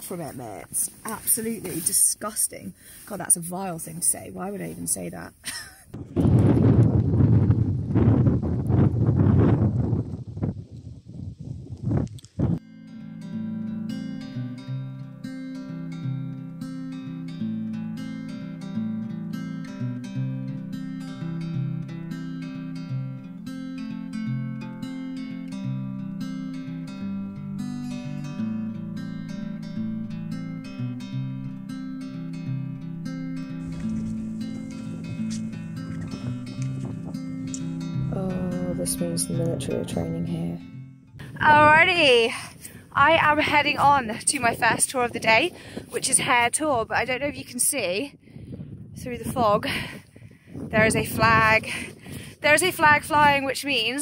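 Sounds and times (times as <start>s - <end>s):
wind rushing on microphone: 5.9s - 12.6s, 36.0s - 37.3s, 41.2s - 54.0s
acoustic guitar music: 12.6s - 47.9s, 50.8s - 54.0s.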